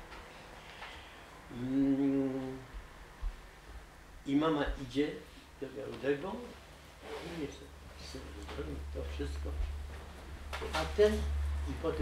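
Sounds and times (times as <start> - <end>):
man humming low note: 1.5 - 2.7.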